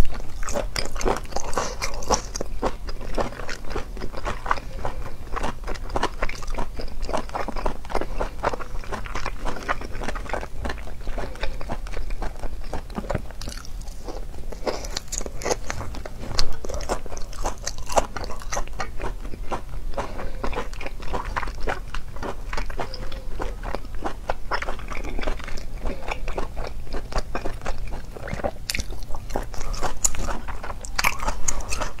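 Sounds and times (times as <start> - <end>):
person chewing crunchy food: 0.0 - 32.0
steady low hum: 0.0 - 32.0.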